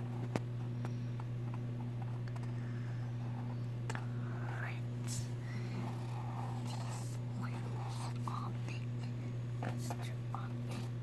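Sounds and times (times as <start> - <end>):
steady low hum: 0.0 - 11.0
soft whispering: 2.4 - 11.0.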